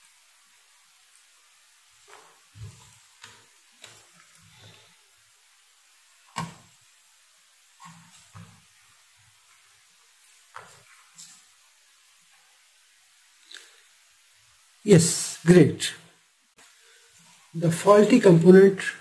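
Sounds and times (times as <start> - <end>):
faint hiss: 0.0 - 19.0.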